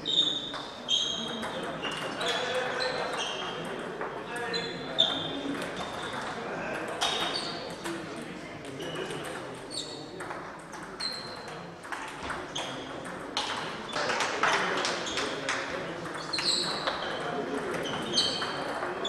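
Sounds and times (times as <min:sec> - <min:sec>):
murmur of voices: 0:00.0 - 0:19.0
table tennis balls clicking: 0:05.4 - 0:19.0.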